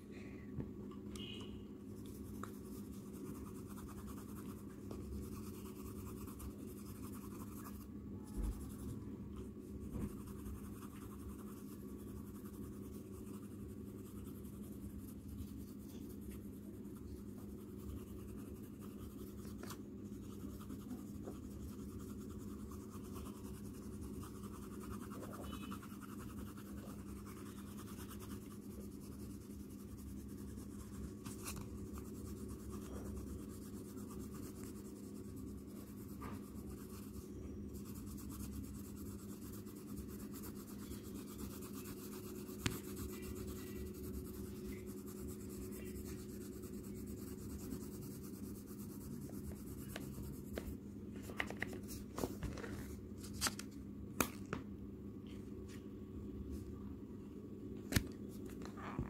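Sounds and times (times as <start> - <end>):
steady low hum: 0.0 - 59.0
pencil shading on paper: 2.0 - 9.0, 9.7 - 50.7.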